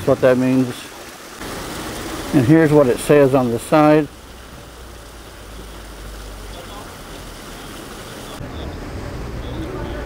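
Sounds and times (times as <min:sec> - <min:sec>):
fountain water splashing: 0:00.0 - 0:10.0
low rumble of street ambience: 0:02.1 - 0:10.0.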